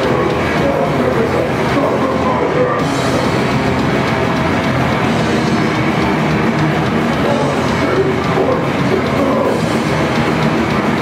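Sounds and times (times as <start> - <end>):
grindcore band playing live: 0.0 - 11.0.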